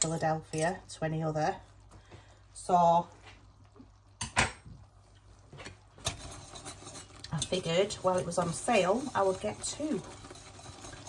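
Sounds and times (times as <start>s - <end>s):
whisk clicking against pot: 5.6s - 11.0s.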